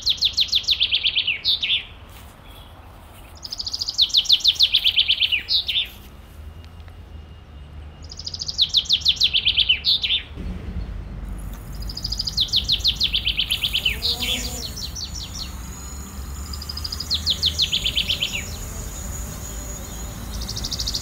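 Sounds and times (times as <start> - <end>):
songbird singing: 0.0 - 21.0
low rumble: 10.4 - 13.9.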